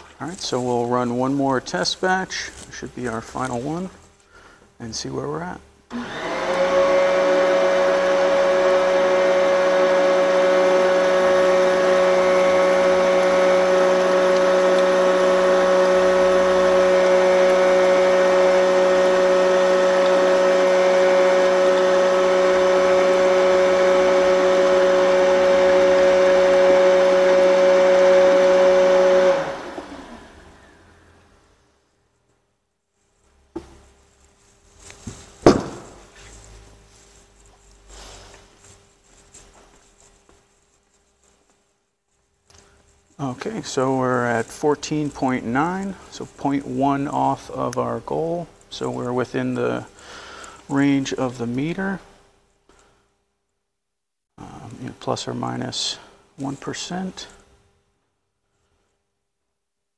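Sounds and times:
electric pump motor whining: 0:05.9 - 0:31.5
liquid pouring into bucket: 0:06.0 - 0:30.4.

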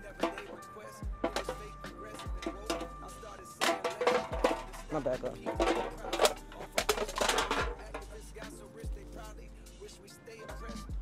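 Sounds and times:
deep thumping beat: 0:01.0 - 0:01.5.

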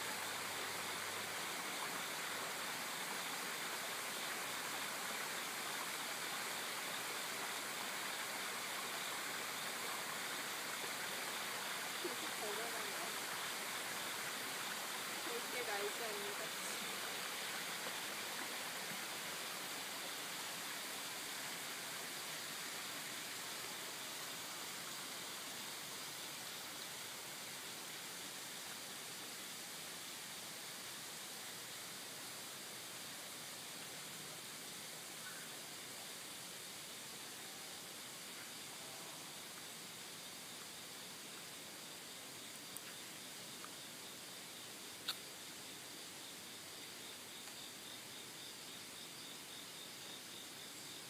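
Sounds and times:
stream rushing: 0:00.0 - 0:38.7.

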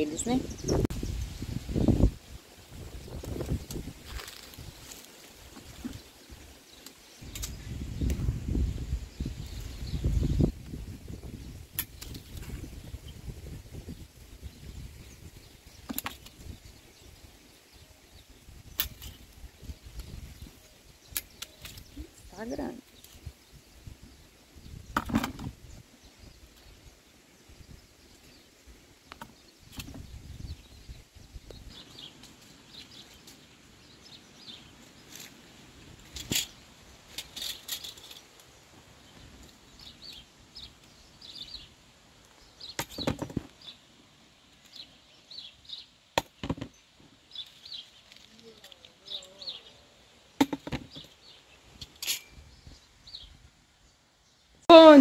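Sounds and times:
wind rumble on microphone: 0:00.0 - 0:04.9, 0:07.2 - 0:28.5, 0:29.4 - 0:32.1
leaves rustling: 0:00.0 - 0:53.9.

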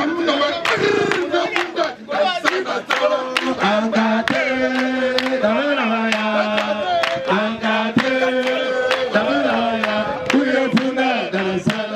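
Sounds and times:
man singing into microphone: 0:00.0 - 0:11.9
voices singing along: 0:00.0 - 0:11.9
hands clapping: 0:00.6 - 0:03.6, 0:04.2 - 0:05.4, 0:06.0 - 0:11.9.

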